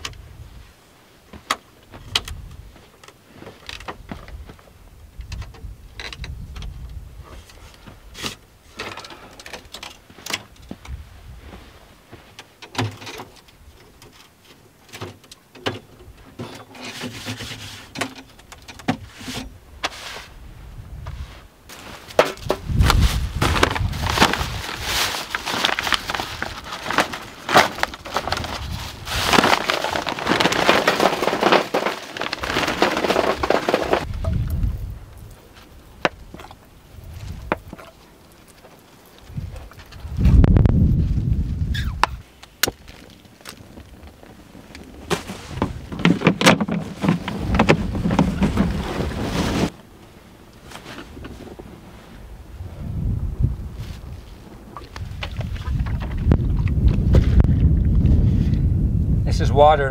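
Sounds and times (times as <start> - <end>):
wind buffeting microphone: 4.0 - 8.1, 10.6 - 11.7, 19.6 - 21.4, 22.4 - 25.0, 33.9 - 37.8, 39.2 - 42.3, 51.1 - 59.9
burning charcoal crackling: 19.9 - 46.0
plastic bag rustling: 21.7 - 34.2, 42.8 - 49.8.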